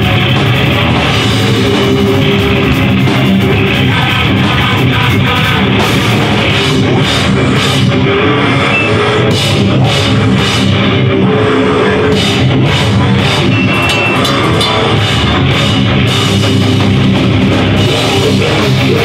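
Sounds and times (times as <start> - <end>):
loud live hardcore band: 0.0 - 19.0
cymbals crashing: 12.2 - 16.8.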